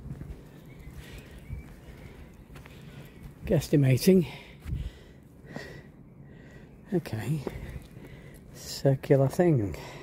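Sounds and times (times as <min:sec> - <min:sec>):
footsteps on rock and grass: 0:00.0 - 0:05.0, 0:07.3 - 0:08.2.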